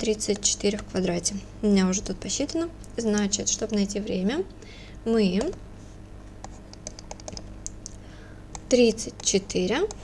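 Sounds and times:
stylus clicks and taps: 0.0 - 0.9, 5.4 - 5.6, 6.4 - 10.0
faint steady hum: 0.0 - 10.0.

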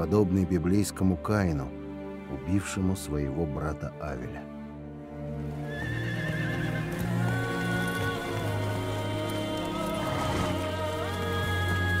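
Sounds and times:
film score music with held notes: 0.0 - 12.0
horse whinnying: 5.6 - 8.0, 9.6 - 11.0.

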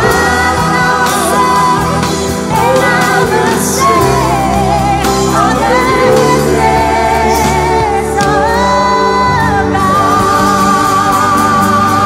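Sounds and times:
electric and acoustic guitars: 0.0 - 12.0
person singing: 0.0 - 12.0
sustained low bass notes: 0.0 - 12.0.

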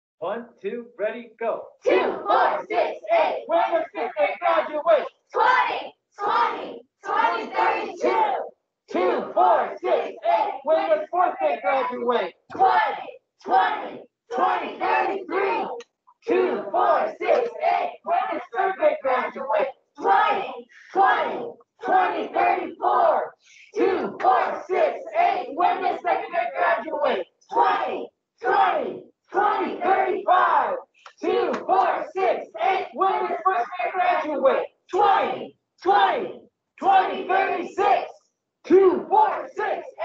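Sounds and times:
people chanting a cheer: 1.7 - 40.0.

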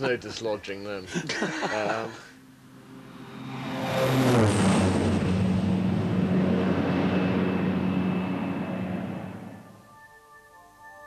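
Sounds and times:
plane engines droning: 2.1 - 9.8.

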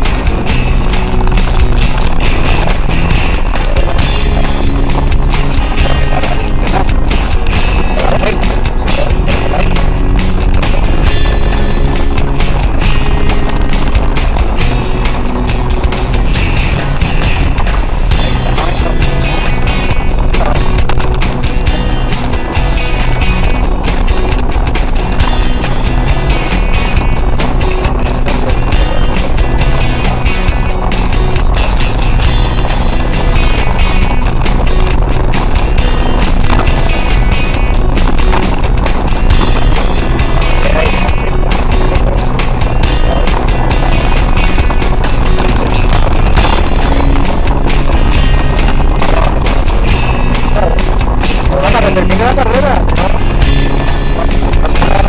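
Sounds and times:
music playing: 0.0 - 55.0
tyre and body rattle: 0.0 - 55.0
vehicle engine running: 0.0 - 55.0.

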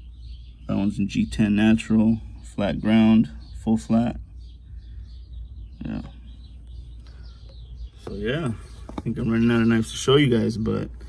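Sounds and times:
birds chirping: 0.0 - 11.0
steady low hum: 0.0 - 11.0.

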